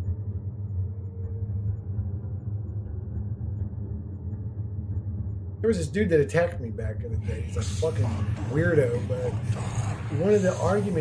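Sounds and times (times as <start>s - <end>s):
low rumbling hum: 0.0s - 11.0s.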